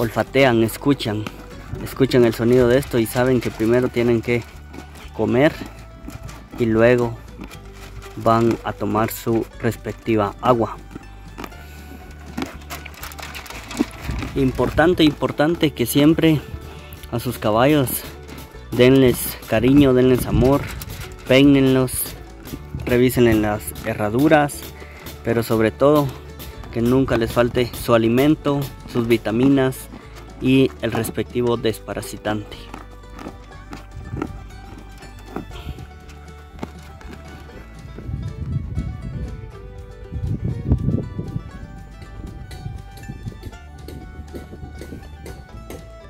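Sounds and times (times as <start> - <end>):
grain crunching: 0.0 - 37.7
horse chewing grain: 0.0 - 38.5
background music: 0.0 - 46.0.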